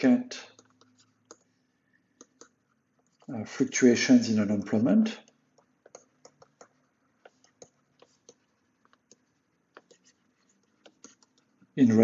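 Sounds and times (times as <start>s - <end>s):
stylus tapping tablet screen: 0.5s - 3.3s, 4.6s - 11.8s.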